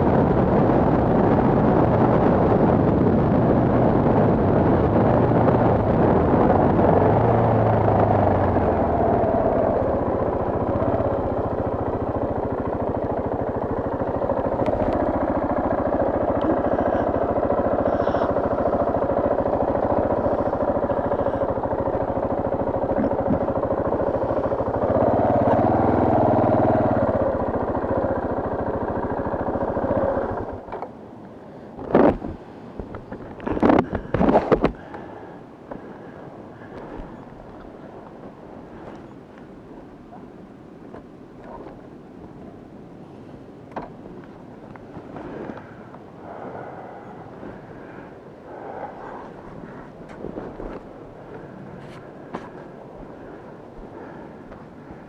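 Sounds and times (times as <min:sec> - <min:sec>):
motorcycle engine running: 0:00.0 - 0:41.8, 0:43.8 - 0:55.0.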